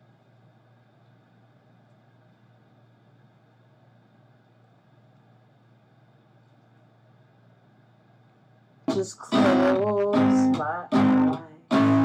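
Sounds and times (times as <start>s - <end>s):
faint room hum: 0.0s - 12.0s
acoustic guitar: 8.9s - 12.0s
person singing: 8.9s - 12.0s.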